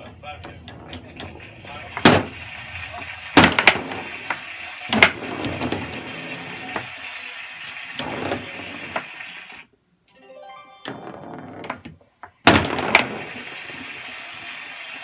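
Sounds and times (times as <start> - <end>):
foosball knocks and bangs: 0.0 - 6.9, 7.9 - 9.1, 10.9 - 14.0
steady hiss: 0.1 - 9.7, 13.0 - 15.0.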